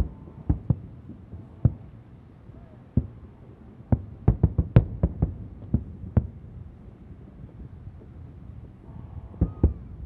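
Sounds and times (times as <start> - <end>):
distant fireworks booming: 0.0 - 1.9, 2.9 - 6.4, 9.2 - 10.0
low background noise: 0.0 - 10.0.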